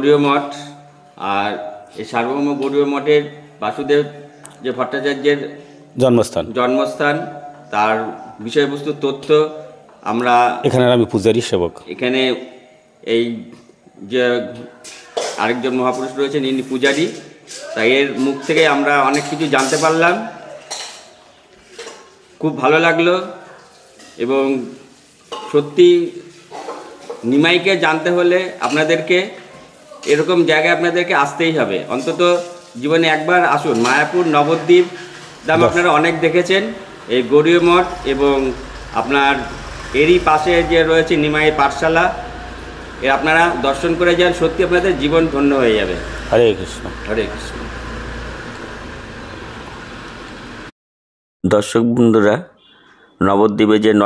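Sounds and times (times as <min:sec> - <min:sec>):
ambient hiss: 0:24.2 - 0:50.7
man's voice: 0:35.5 - 0:42.2, 0:43.0 - 0:47.4.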